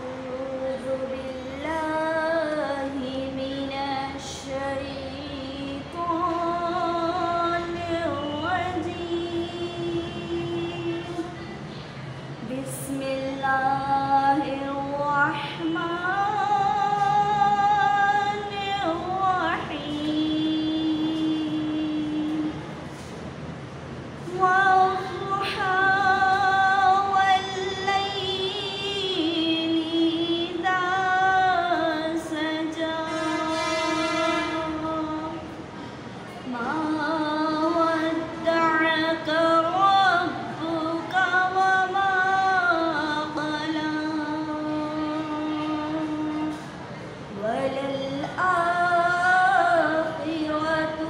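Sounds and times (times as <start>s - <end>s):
girl reciting melodically: 0.0s - 23.1s, 24.2s - 33.6s, 34.4s - 51.0s
girl chanting recitation: 24.2s - 33.1s.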